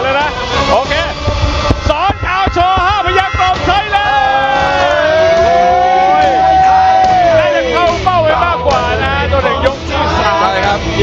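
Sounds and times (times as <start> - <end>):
announcer calling over pa: 1.9 - 5.0.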